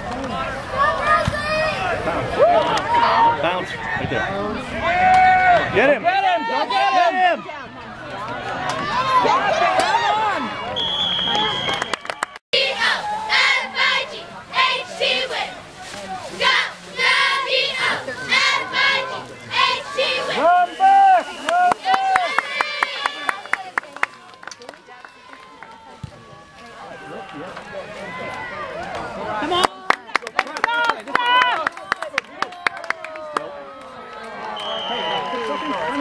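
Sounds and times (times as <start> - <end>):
spectators shouting and cheering: 0.0 - 36.0.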